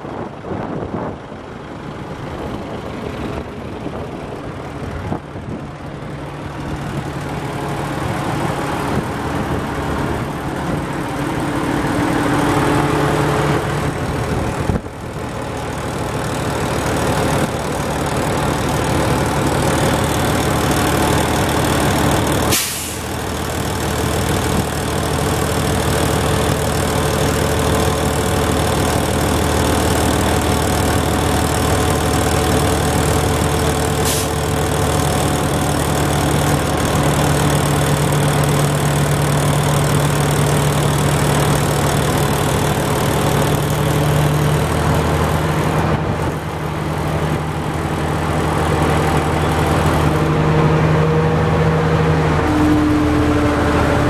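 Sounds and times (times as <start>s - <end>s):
dump truck engine running: 0.0s - 54.0s.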